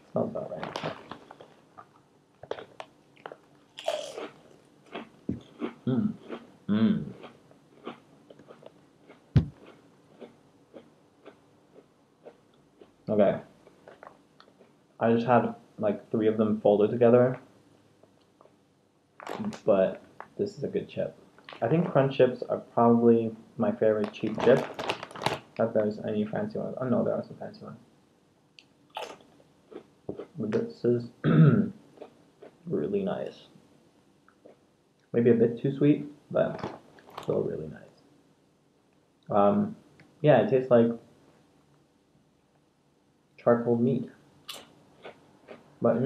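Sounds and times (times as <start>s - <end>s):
potato chip crunch: 2.4s - 6.4s, 19.2s - 19.7s, 23.9s - 25.6s
chewing crunchy chips: 2.4s - 6.5s, 7.1s - 13.0s, 19.2s - 19.7s, 24.0s - 25.6s.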